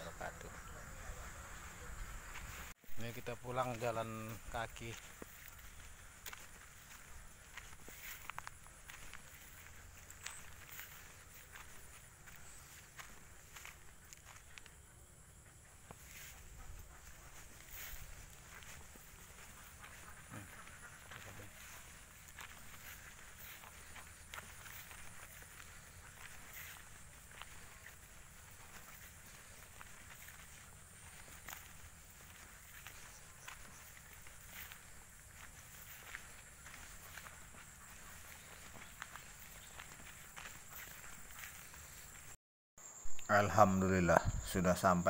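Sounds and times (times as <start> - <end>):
footsteps on dirt path: 0.0 - 42.4.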